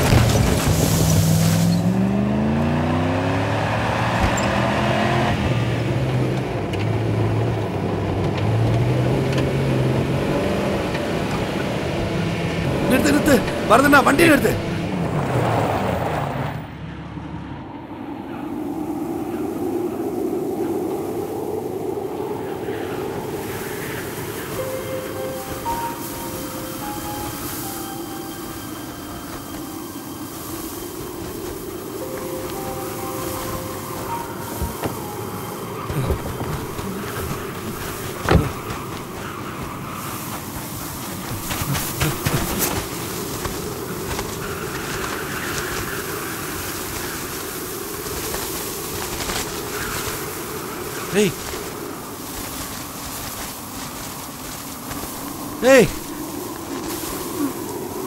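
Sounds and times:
vehicle rumble: 0.0 - 58.0
sparse music notes: 19.8 - 45.8.

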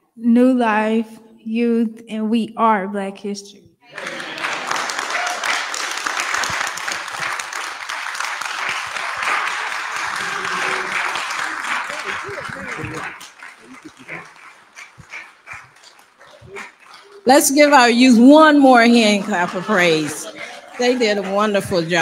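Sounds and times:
congregation applauding: 3.9 - 22.0
voices: 9.2 - 22.0.

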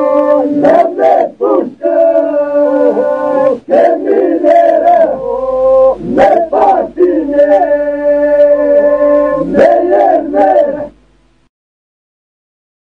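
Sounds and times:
men singing polyphonic song: 0.0 - 11.0.

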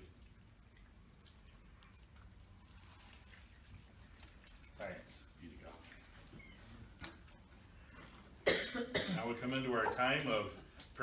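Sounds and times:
man coughing into microphone: 8.4 - 9.4.

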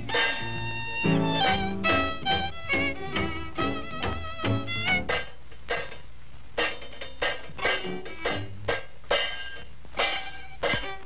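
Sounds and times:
syncopated jazz chords: 0.0 - 5.3.

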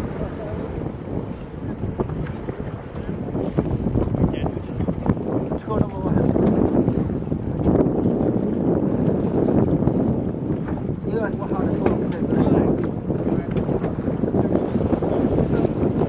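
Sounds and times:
boat engine running: 0.0 - 16.0
wind buffeting microphone: 0.0 - 16.0.

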